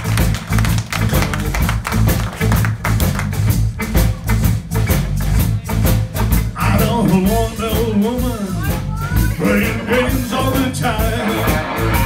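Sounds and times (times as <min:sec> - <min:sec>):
rock and roll band playing: 0:00.0 - 0:12.0
person singing: 0:06.6 - 0:12.0.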